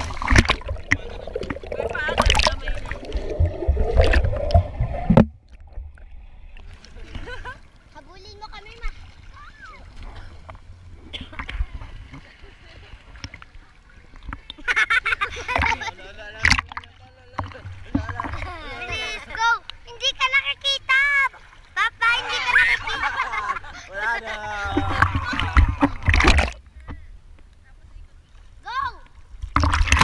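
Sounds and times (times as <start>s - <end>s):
underwater churning and bubbling: 0.0s - 7.9s, 24.6s - 26.6s, 29.4s - 30.0s
sharp water splashes: 0.0s - 10.2s, 15.5s - 20.3s, 24.7s - 26.6s, 29.3s - 30.0s
pool water sloshing: 0.0s - 27.0s, 27.8s - 30.0s.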